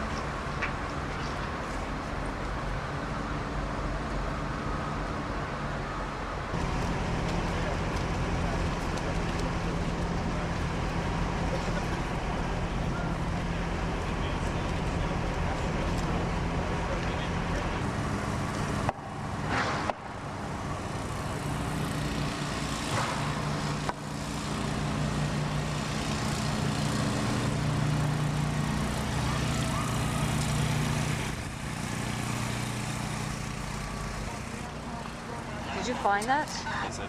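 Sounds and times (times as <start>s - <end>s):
low engine drone: 0.0s - 37.0s.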